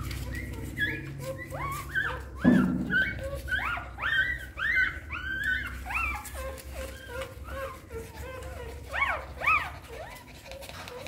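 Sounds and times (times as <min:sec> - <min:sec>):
newborn puppies squealing: 0:00.0 - 0:11.0.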